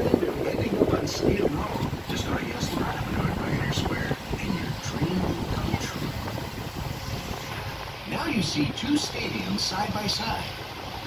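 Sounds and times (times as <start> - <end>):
boat engine rumble: 0.0 - 11.0
water rushing past: 0.0 - 11.0
wind: 0.0 - 11.0.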